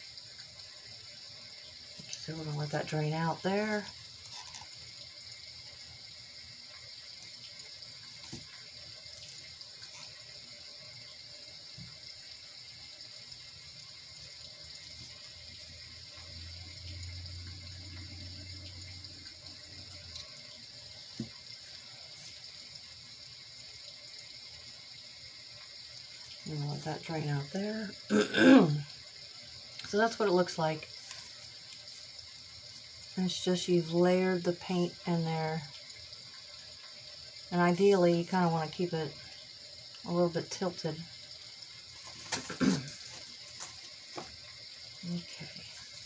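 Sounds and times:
recorded rain hiss: 0.0s - 46.0s.

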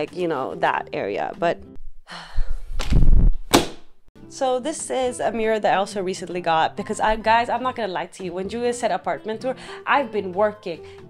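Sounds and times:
sharp knock: 2.8s - 3.9s.

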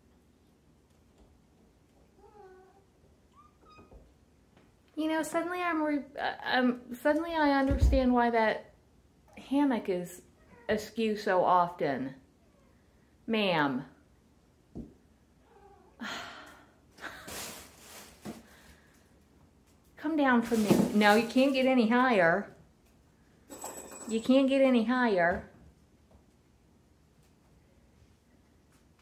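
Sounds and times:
woman sighing: 16.0s - 16.7s.

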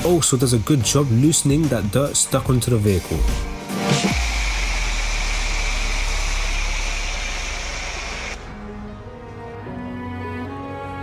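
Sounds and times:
soft background music: 0.0s - 4.1s, 8.4s - 11.0s
pressure washer spray hiss: 4.0s - 8.4s.

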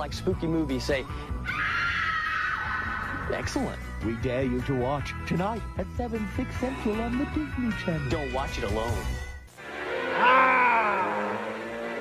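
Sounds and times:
background music: 0.0s - 12.0s
group of voices screaming: 1.4s - 3.2s, 10.1s - 11.5s.

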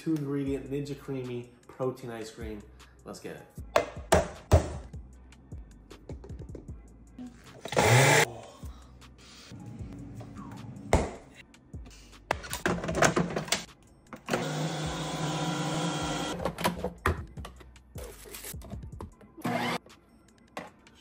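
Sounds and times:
ice cream maker motor hum: 14.3s - 16.3s.

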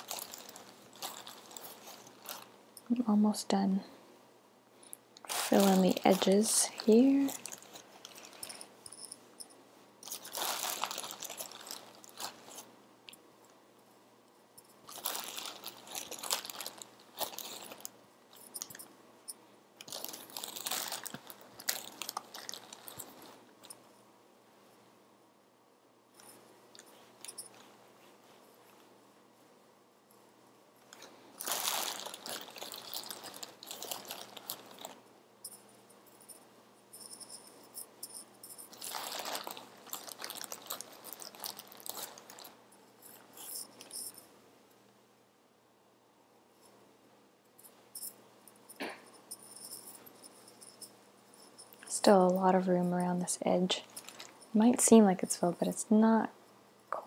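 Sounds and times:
stuffing rustling: 0.0s - 2.6s, 5.2s - 12.7s, 14.8s - 18.8s, 19.8s - 23.8s, 26.2s - 28.8s, 30.9s - 35.0s, 38.1s - 44.2s, 53.8s - 54.7s.

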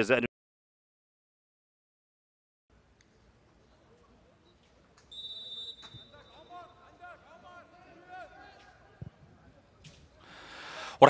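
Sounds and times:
referee's whistle blast: 5.1s - 6.8s
faint shouts of players: 6.0s - 9.2s.

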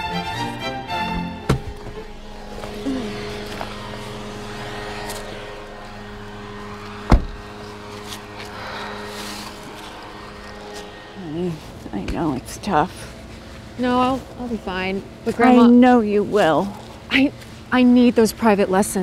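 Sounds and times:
car engine humming: 0.0s - 19.0s
car door shutting: 1.4s - 2.7s, 7.0s - 7.5s.

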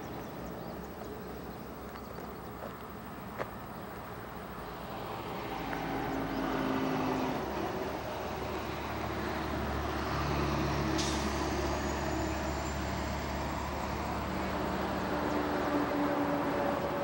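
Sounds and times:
heavy truck engine rumbling: 6.0s - 17.0s.

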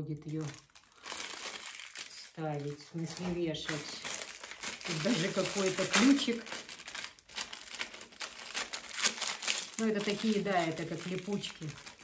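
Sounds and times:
plastic packaging crinkling: 0.1s - 12.0s.

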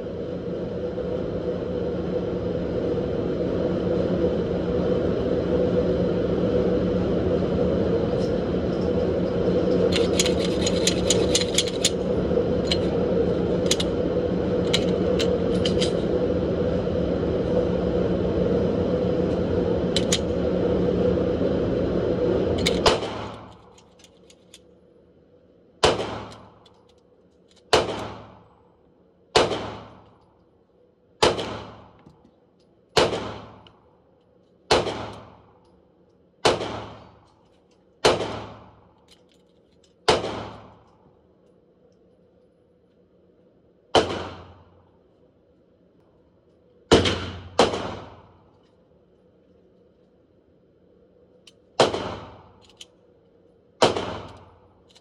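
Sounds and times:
gunshots echoing indoors: 25.8s - 26.3s, 27.7s - 28.4s, 29.3s - 30.1s, 31.2s - 32.0s, 32.9s - 33.7s, 34.7s - 35.4s, 36.4s - 37.2s, 38.0s - 38.8s, 40.0s - 40.9s, 43.9s - 44.7s, 46.9s - 48.3s, 51.8s - 52.6s, 53.8s - 54.6s.

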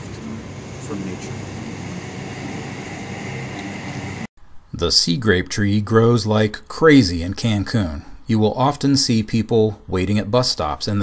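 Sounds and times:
distant traffic rumble: 0.0s - 4.9s.

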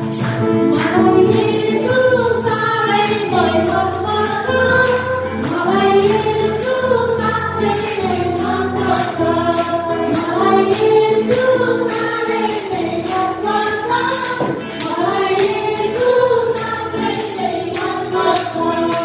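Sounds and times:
hand drum beat: 0.0s - 19.0s
women singing a hymn: 0.6s - 19.0s.

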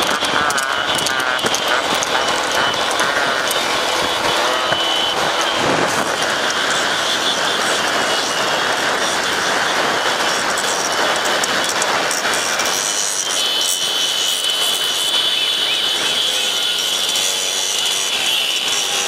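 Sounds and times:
motorcycle engines running: 0.0s - 19.0s
steady high whine: 0.0s - 19.0s
wind rush: 3.8s - 10.0s.

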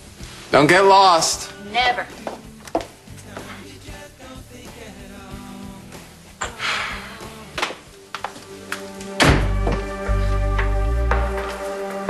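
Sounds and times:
heavy low thud: 9.2s - 11.4s.

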